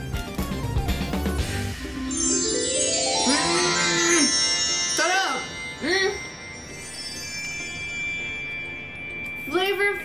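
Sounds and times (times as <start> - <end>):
soft background music: 0.0 - 10.0
bell-like chime: 1.4 - 10.0.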